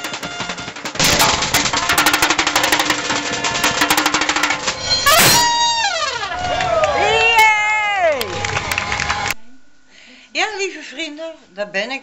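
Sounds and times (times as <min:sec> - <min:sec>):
marching snare drums: 0:00.0 - 0:04.8
loud cymbal crash: 0:01.0 - 0:05.8.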